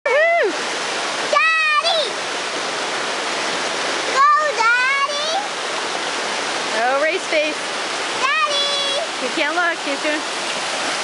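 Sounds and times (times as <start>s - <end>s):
child calling out: 1.4s - 2.2s, 8.2s - 9.1s.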